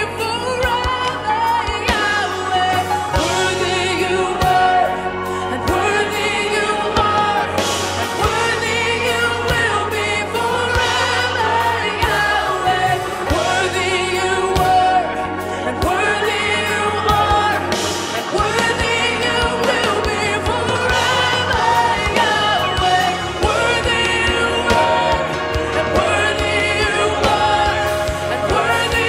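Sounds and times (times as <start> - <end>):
backing singers: 0.0 - 29.0
band playing: 0.0 - 29.0
woman singing lead: 0.0 - 29.0.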